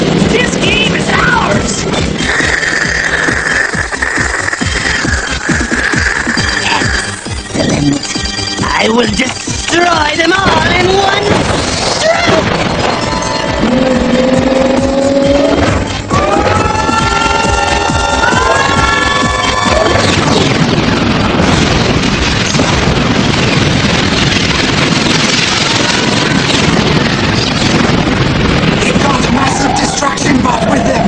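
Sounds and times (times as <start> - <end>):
dramatic music: 0.0 - 31.0
stepped gliding tones: 0.2 - 31.0.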